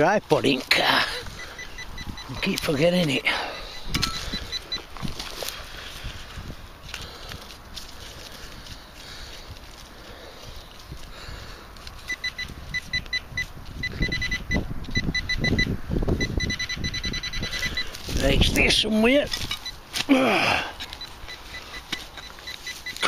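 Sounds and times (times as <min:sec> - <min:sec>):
metal detector pinpointer beeping: 0:00.5 - 0:05.0, 0:12.0 - 0:20.0, 0:20.8 - 0:23.0
soil scraping and rustling: 0:02.2 - 0:13.8, 0:17.5 - 0:23.0.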